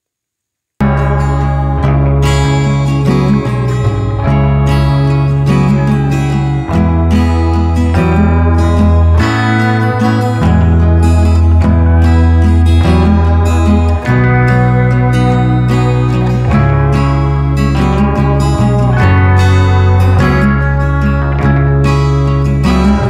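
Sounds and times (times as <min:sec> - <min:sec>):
music with guitar and bass: 0:00.8 - 0:23.0.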